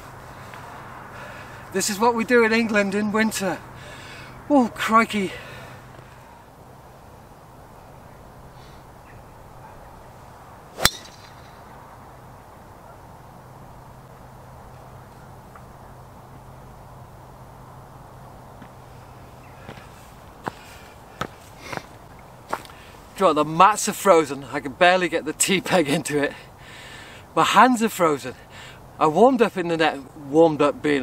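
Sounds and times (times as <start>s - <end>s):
low background noise: 0.0s - 31.0s
golf club striking ball: 10.8s - 11.7s.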